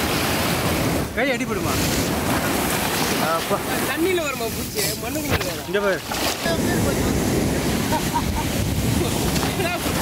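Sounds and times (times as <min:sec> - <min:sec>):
surf washing over sand: 0:00.0 - 0:10.0
wind buffeting microphone: 0:00.0 - 0:10.0.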